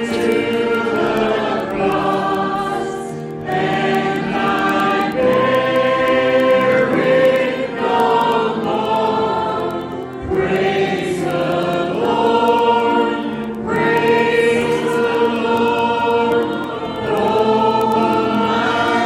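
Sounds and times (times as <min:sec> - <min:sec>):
group singing worship song: 0:00.0 - 0:19.0.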